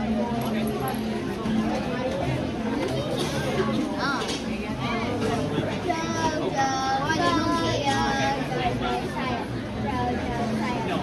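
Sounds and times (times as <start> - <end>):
child singing held notes: 5.8 - 8.8.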